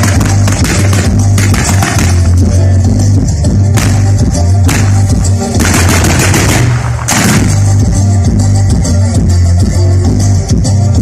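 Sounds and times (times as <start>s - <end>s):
fireworks crackling: 0.0s - 2.4s, 3.8s - 7.9s
loud music with strong bass: 0.0s - 11.0s.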